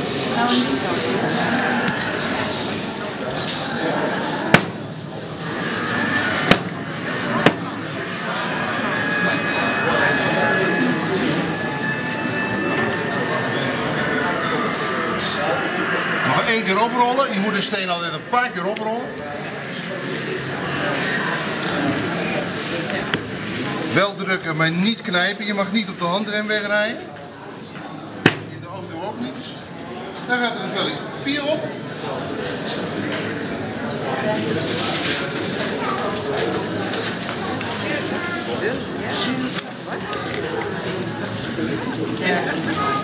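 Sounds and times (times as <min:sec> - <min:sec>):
murmur of people talking: 0:00.0 - 0:43.0
sharp knocks of hard objects: 0:04.5 - 0:04.8, 0:06.4 - 0:06.8, 0:28.2 - 0:28.6.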